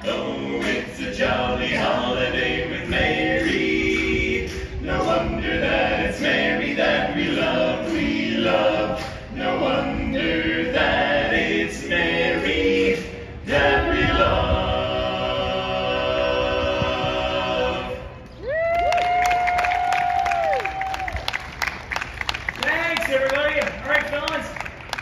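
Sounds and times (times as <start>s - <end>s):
men singing a cappella harmony: 0.0s - 18.2s.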